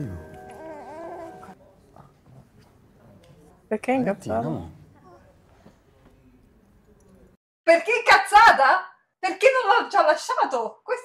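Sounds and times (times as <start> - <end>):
baby babbling cry: 0.4 - 1.6.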